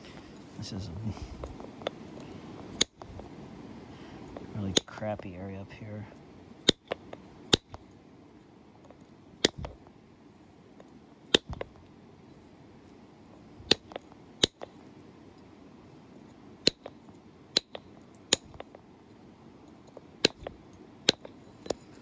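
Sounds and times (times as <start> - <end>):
stone flakes snapping clicks: 9.4 - 9.8, 11.4 - 11.7, 17.6 - 18.6, 19.9 - 21.3.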